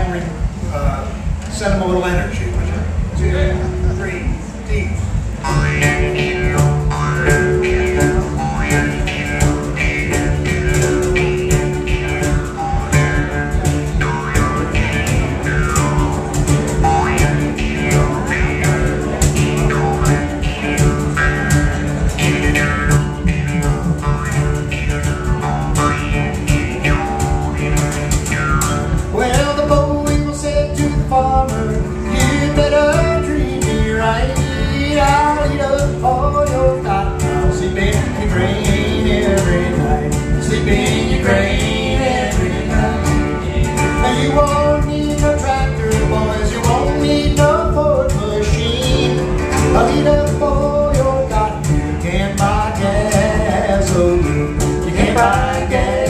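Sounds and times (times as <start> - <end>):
drum kit: 0.0 - 56.0
strummed acoustic guitar: 0.0 - 56.0
upright bass: 0.0 - 56.0.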